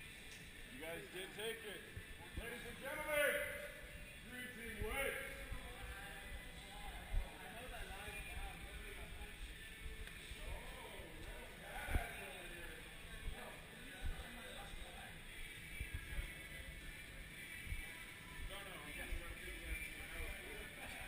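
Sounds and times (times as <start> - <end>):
people talking indistinctly: 0.6 - 21.0.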